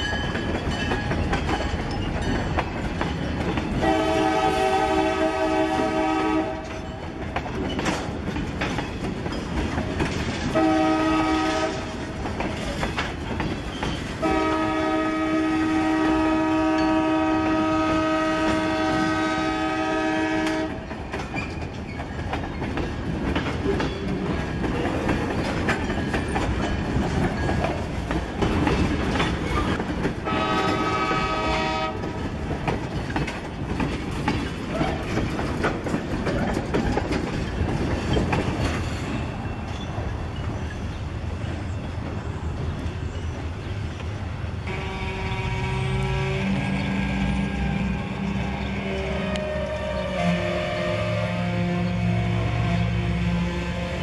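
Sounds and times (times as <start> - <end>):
train wheels clicking over rail joints: 0.0 - 45.2
locomotive horn blasts: 3.8 - 6.8, 10.5 - 12.0, 14.2 - 20.9, 30.2 - 32.2, 44.6 - 54.0.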